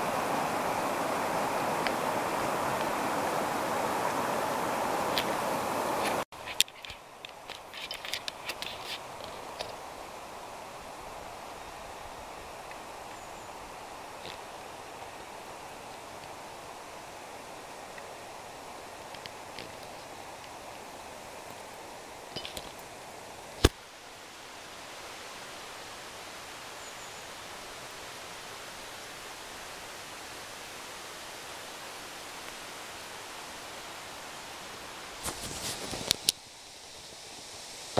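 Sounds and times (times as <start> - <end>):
faint even hiss: 0.0 - 37.9
scattered clicks and rustles: 6.4 - 9.8.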